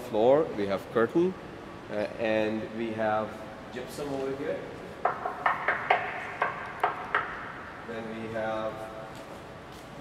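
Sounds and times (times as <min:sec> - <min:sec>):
knuckles knocking on concrete wall: 0:05.0 - 0:07.4.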